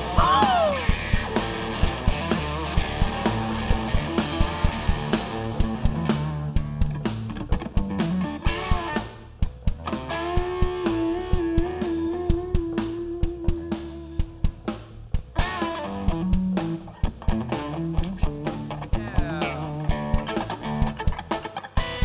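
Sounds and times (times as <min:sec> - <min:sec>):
electric guitar lead: 0:00.0 - 0:22.0
live rock band playing: 0:00.0 - 0:22.0.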